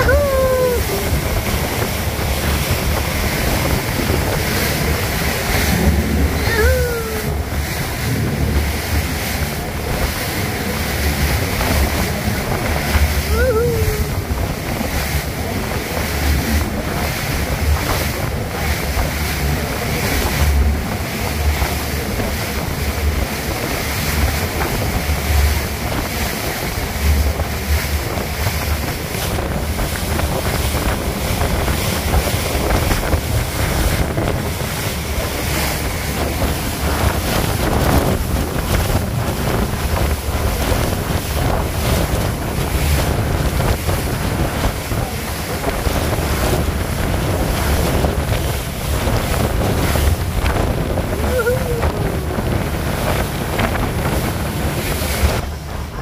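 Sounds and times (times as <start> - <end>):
rush of water along hull: 0.0 - 56.0
wind buffeting microphone: 0.0 - 56.0.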